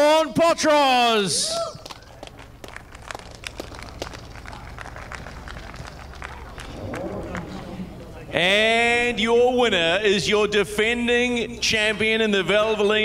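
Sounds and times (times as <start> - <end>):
low steady hum: 1.6 - 11.8
scattered hand claps: 1.8 - 7.6
faint voices: 3.6 - 9.2.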